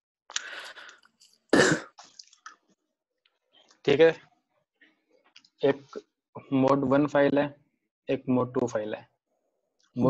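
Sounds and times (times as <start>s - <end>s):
loud cough: 1.5s - 2.0s
person clearing throat: 1.6s - 2.0s.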